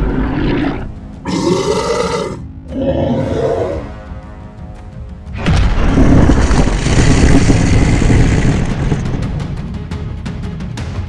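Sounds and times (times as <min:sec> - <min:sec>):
monster growling roar: 0:00.0 - 0:03.9.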